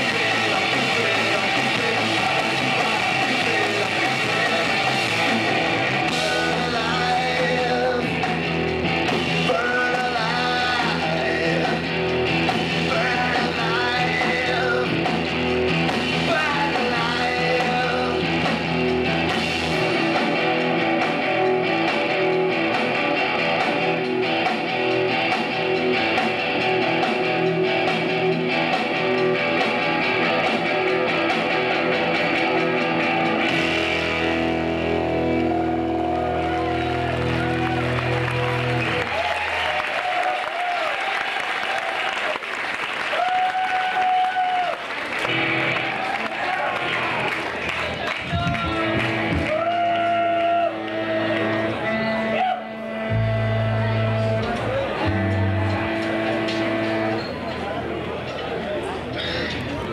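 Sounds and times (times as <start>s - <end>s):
electric guitar sustained notes: 0.0s - 40.0s, 48.3s - 57.8s
bass guitar: 0.0s - 41.1s, 43.1s - 59.9s
crowd noise: 0.0s - 59.9s.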